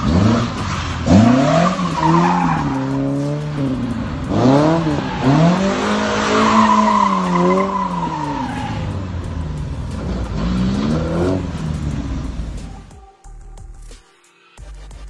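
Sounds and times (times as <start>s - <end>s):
car engine revving: 0.0s - 13.0s
tyres squealing: 0.5s - 9.0s.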